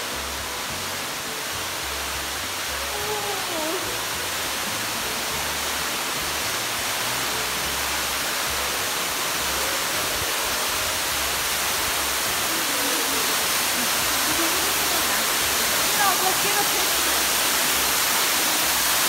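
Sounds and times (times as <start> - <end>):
waterfall rushing in a cave: 0.0 - 19.0.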